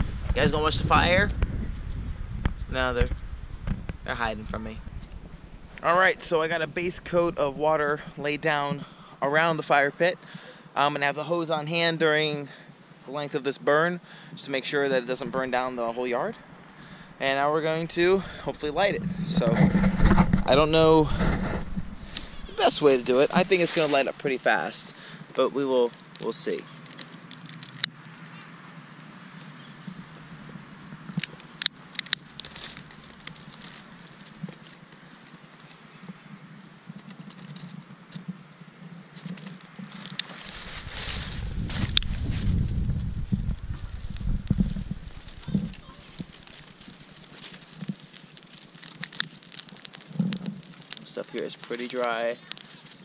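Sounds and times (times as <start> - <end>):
low rumbling: 0.0 - 9.0, 16.4 - 24.6, 40.4 - 51.0
dry leaves rustling and crackling: 20.3 - 25.0, 25.6 - 53.0.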